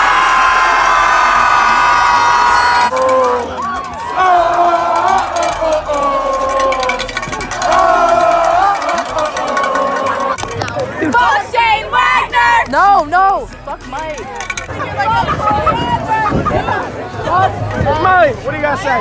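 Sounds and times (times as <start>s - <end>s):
crowd cheering and yelling: 0.0s - 14.1s.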